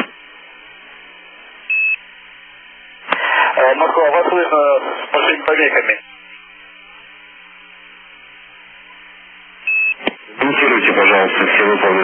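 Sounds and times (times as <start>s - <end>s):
faint steady hum: 0.0s - 12.0s
radio hiss: 0.0s - 12.0s
short high-pitched beep: 9.7s - 10.0s.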